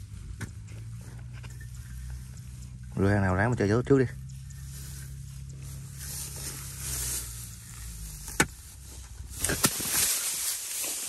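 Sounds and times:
low steady hum: 0:00.0 - 0:10.7.

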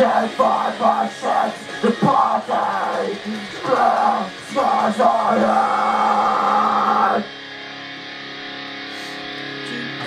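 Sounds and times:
quiet guitar chords ringing: 0:00.0 - 0:10.0.

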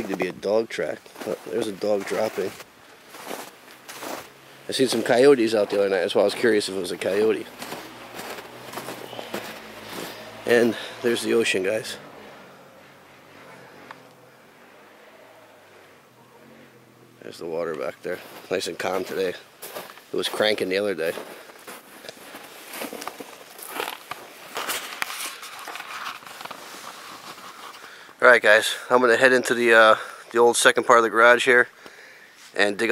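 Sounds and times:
footsteps in deep snow: 0:00.0 - 0:13.5, 0:17.8 - 0:27.8
clothing rustle: 0:21.4 - 0:27.9.

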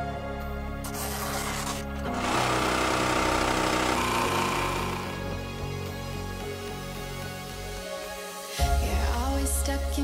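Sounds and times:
background music: 0:00.0 - 0:10.0
sewing machine stitching: 0:00.9 - 0:05.4.

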